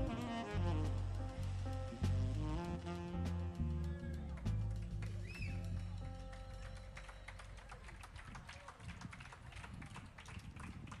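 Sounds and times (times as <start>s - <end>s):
jazz band playing: 0.0s - 6.8s
audience clapping: 4.2s - 11.0s.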